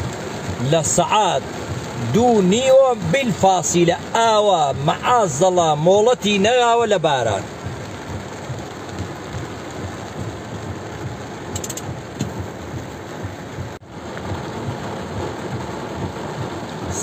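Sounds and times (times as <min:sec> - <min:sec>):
heavy rain on car roof: 0:00.0 - 0:17.0.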